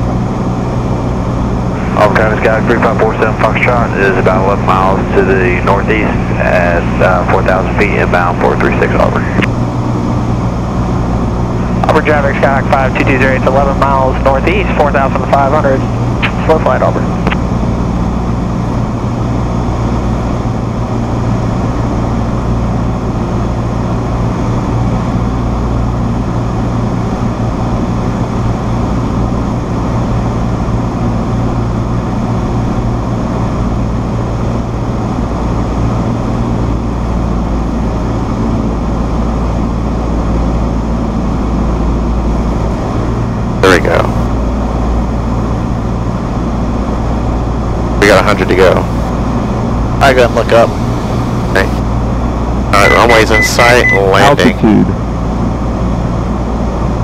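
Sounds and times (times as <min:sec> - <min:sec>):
aircraft engine and propeller droning: 0:00.0 - 0:57.0.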